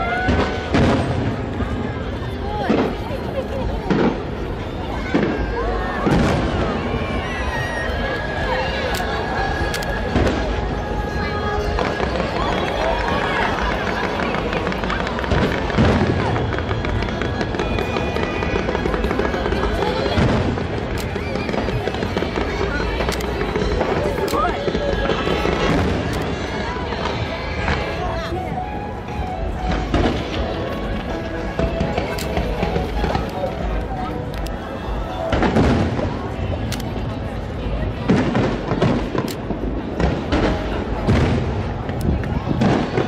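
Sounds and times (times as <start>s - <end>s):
fireworks booms: 0.0s - 8.5s, 9.4s - 43.0s
fireworks popping and crackling: 0.0s - 43.0s
music: 8.4s - 20.4s, 21.4s - 38.9s.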